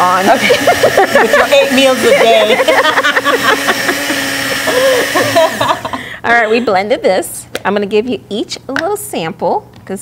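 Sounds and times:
small blender running: 0.0 - 6.2.

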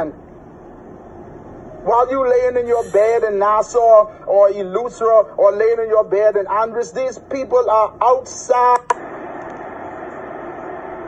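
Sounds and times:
faint droning tone: 0.0 - 8.2.

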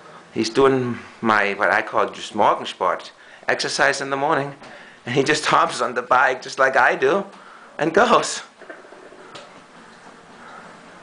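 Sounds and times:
exercise bike whirring: 8.6 - 11.0.

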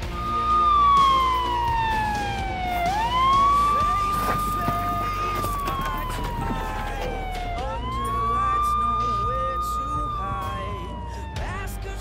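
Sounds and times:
police siren wailing: 0.0 - 12.0.

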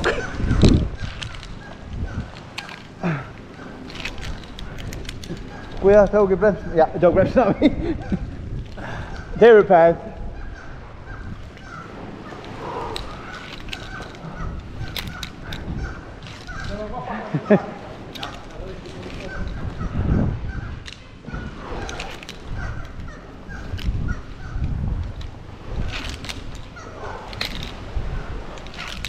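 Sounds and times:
climbing hardware clicking: 0.0 - 29.0
seabird colony calling: 0.0 - 29.0.

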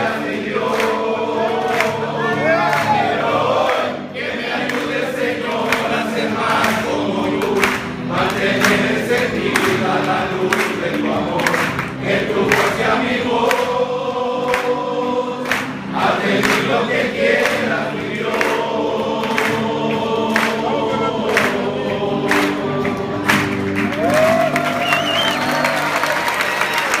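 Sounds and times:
men singing unaccompanied: 0.0 - 23.5
sharp hand claps: 0.7 - 2.0, 4.6 - 13.7, 15.4 - 15.8, 16.4 - 17.6, 20.3 - 21.6, 22.3 - 27.0.

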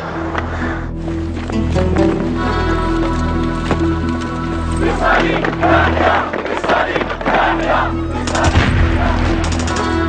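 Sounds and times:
film music: 0.0 - 10.0
voices shouting: 4.4 - 10.0
gunshots: 8.2 - 10.0.

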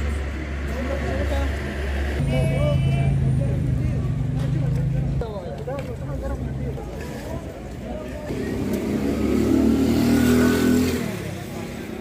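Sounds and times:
people talking: 2.2 - 8.7
vehicle engine revving: 8.3 - 11.6.

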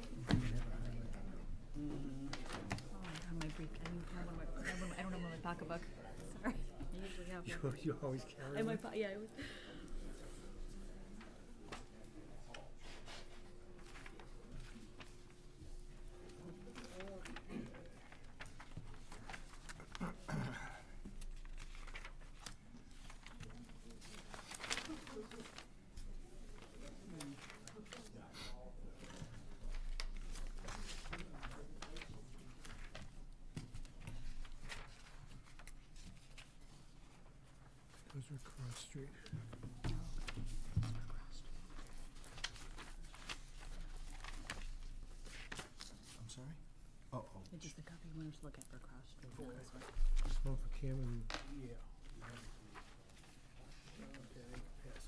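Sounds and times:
faint low talk: 0.0 - 21.2, 22.7 - 35.6
papers rustling: 2.2 - 4.4, 10.3 - 20.2, 21.1 - 28.2, 29.0 - 46.4, 49.6 - 55.0.

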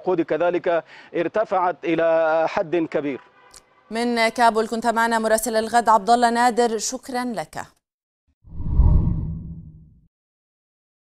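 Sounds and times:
deep airy whoosh: 8.5 - 9.8.

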